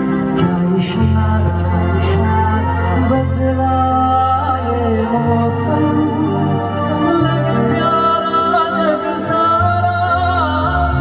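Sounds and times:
keyboard and bass: 0:00.0 - 0:11.0
man singing long note: 0:00.3 - 0:11.0.

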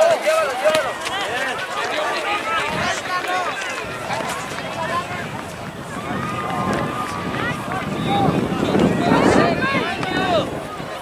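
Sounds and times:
people shouting and calling out: 0:00.0 - 0:11.0.

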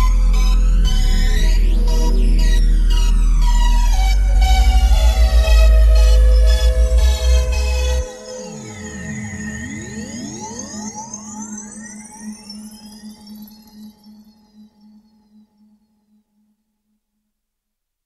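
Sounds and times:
sweeping synth tones: 0:00.0 - 0:14.5.

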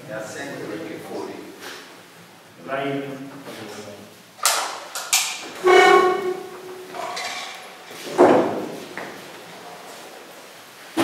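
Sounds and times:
short musical tones: 0:05.6 - 0:07.0.

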